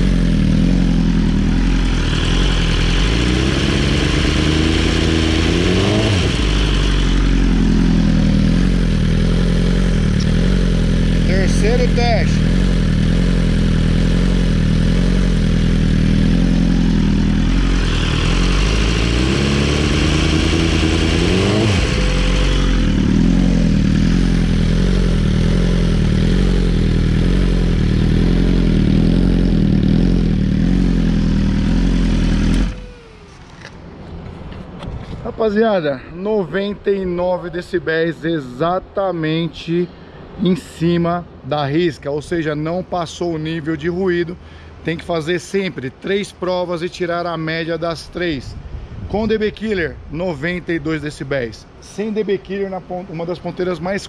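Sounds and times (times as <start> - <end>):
motorcycle engine revving: 0.0 - 34.0.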